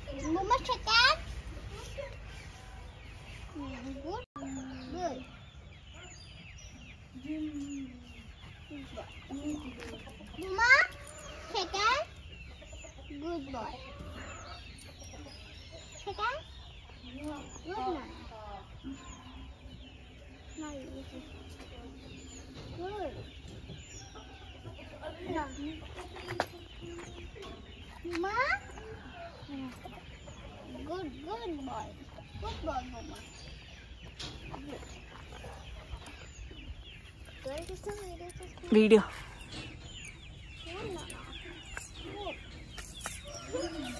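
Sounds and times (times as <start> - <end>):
chickens clucking: 0.0 - 43.9.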